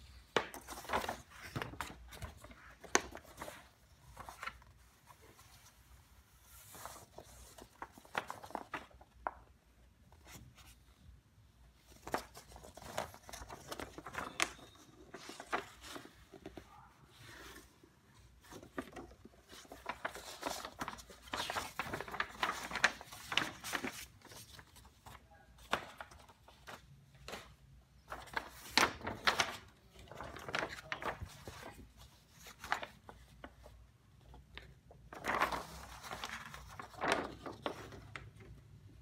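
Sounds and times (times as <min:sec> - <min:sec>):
paper crinkling and rustling: 0:00.2 - 0:10.9, 0:11.8 - 0:38.6.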